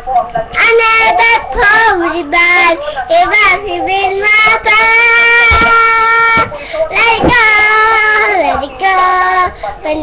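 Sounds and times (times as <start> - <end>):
young children singing: 4.0 - 9.5.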